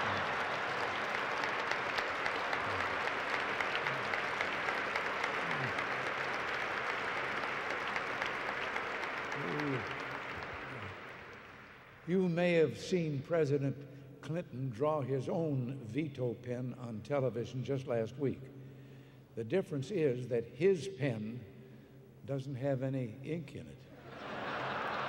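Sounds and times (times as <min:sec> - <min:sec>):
audience applauding: 0:00.0 - 0:12.0, 0:24.2 - 0:25.0
crowd cheering: 0:00.0 - 0:12.0, 0:24.1 - 0:25.0.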